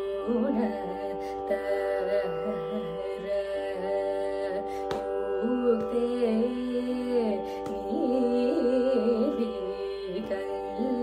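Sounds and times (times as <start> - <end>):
sung melody with ornaments: 0.0 - 11.0.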